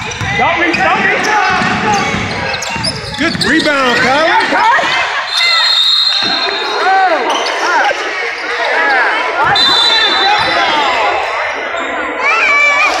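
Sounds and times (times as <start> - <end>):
basketball bouncing: 0.0 - 5.0
shoes squeaking on hardwood floor: 0.6 - 7.8.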